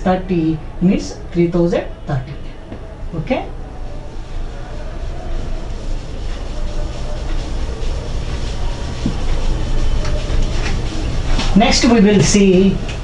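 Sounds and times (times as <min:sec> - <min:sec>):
duster rubbing whiteboard: 0:04.2 - 0:12.4.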